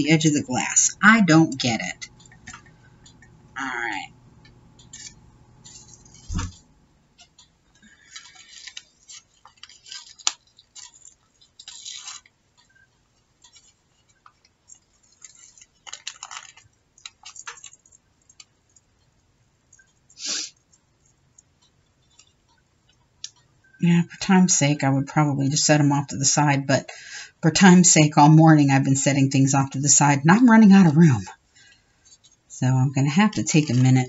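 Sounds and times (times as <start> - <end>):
dull thump: 6.3 - 6.6
fingers sifting small pieces: 8.1 - 12.7.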